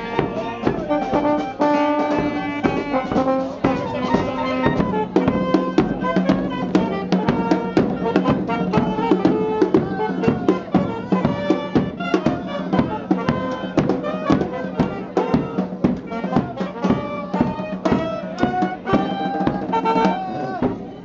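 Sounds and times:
brass band playing: 0.0s - 21.0s
steady drum beat: 0.0s - 21.0s.

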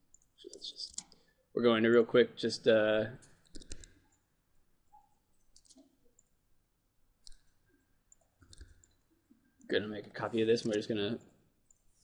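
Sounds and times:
faint computer mouse clicks: 7.2s - 7.5s, 8.1s - 9.0s.

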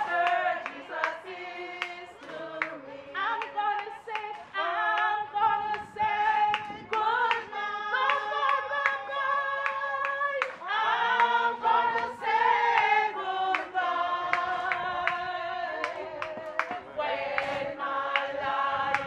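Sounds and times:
hand claps keeping time: 0.0s - 19.0s
people singing unaccompanied: 0.0s - 19.0s
woman leading singing: 0.0s - 19.0s.

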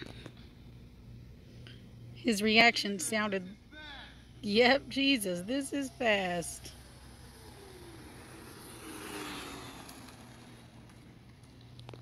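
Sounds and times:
road and wind hiss: 0.0s - 12.0s
electric motor whining: 4.9s - 12.0s.

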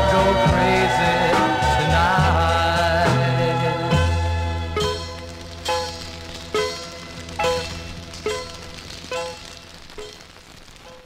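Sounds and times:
bass: 0.0s - 10.4s
vinyl crackle: 0.0s - 11.0s
swamp-pop record chord strikes: 2.1s - 11.0s.

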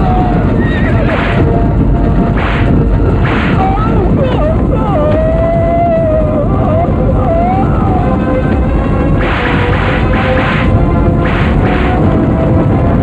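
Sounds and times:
booms: 0.0s - 4.0s, 9.1s - 12.2s
rumble of charging horses: 0.0s - 13.0s
long wavering cry: 3.6s - 8.5s.

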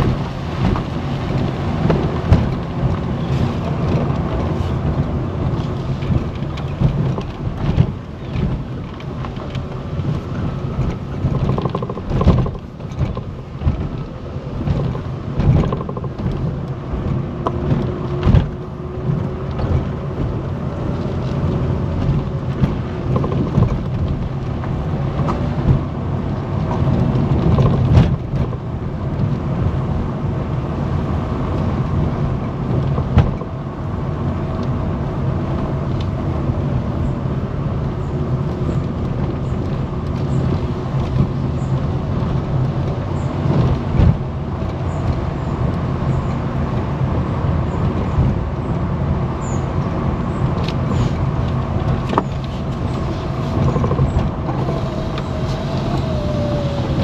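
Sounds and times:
car knocks and jolts: 0.0s - 29.8s, 31.6s - 33.6s, 38.2s - 48.4s, 50.5s - 57.0s
tyre and engine rumble: 0.0s - 57.0s.

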